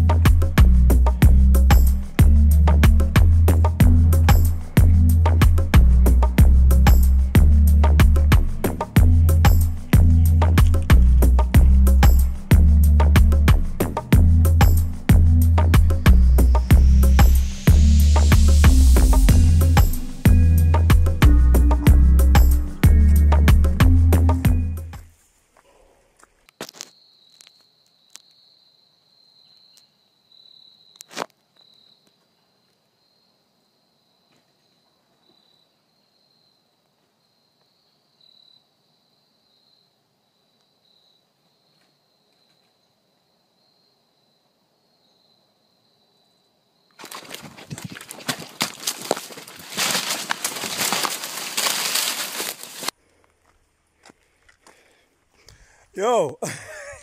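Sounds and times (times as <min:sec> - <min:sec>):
insect high-pitched trill: 0:14.4 - 0:22.9
insect trill: 0:15.8 - 0:21.2, 0:26.7 - 0:52.9
footsteps on dry leaves: 0:47.0 - 0:54.9.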